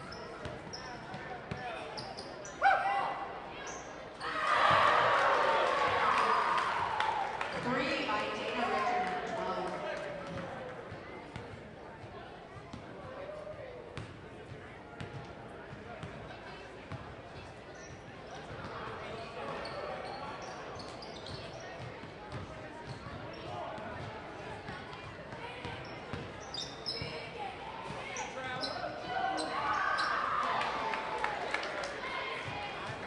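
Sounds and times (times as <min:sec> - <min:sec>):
voices in echoing gym: 0:00.0 - 0:33.0.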